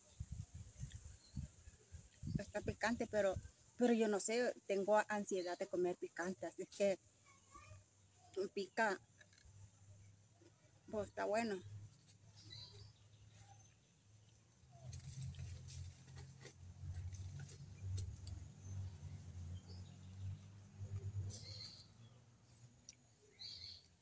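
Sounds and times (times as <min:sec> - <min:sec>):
birds chirping faintly: 0:00.0 - 0:24.0.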